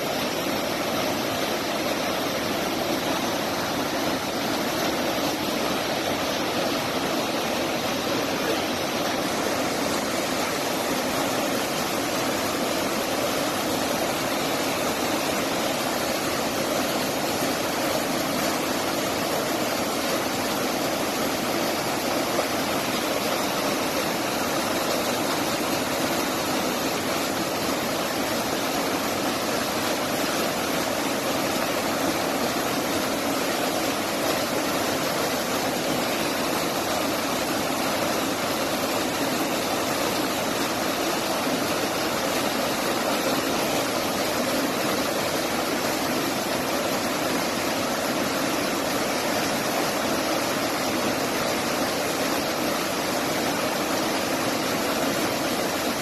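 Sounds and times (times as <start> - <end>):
small waterfall rushing: 0.0 - 56.0.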